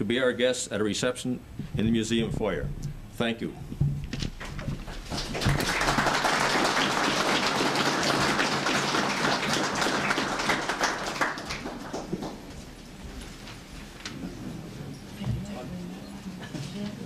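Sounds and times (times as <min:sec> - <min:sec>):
audience applauding: 0:04.5 - 0:12.7.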